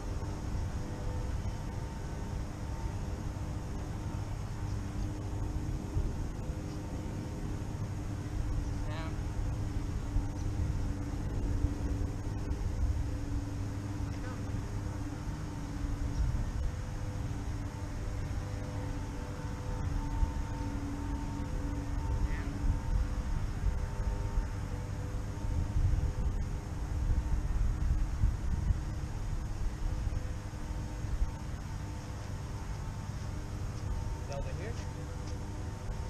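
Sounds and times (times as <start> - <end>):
distant engine drone: 0.0 - 36.0
low uneven rumble: 0.0 - 36.0.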